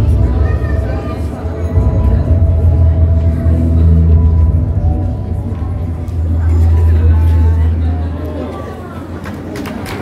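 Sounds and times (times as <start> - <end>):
deep bass drone: 0.0 - 8.7
crowd chattering: 0.0 - 10.0
scattered claps: 9.1 - 10.0.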